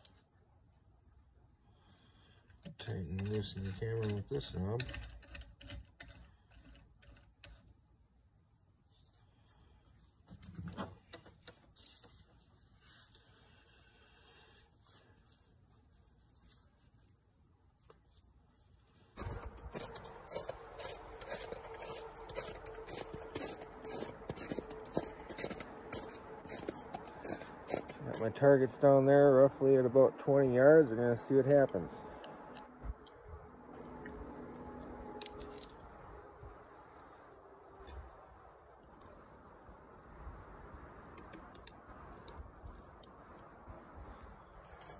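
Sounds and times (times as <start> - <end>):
faint steady hum: 0.0 - 44.9.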